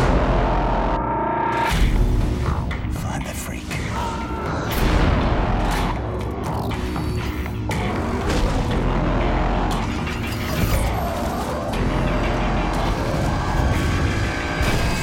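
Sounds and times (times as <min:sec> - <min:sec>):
film trailer music: 0:00.0 - 0:15.0.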